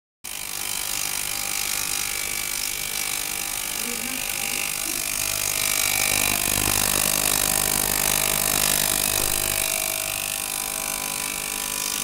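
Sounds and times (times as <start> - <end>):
ultrasonic cleaner buzzing: 0.3 - 12.0.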